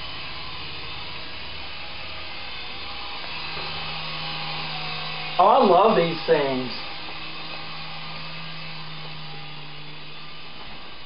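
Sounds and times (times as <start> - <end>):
toy helicopter rotors whirring: 0.0 - 11.0.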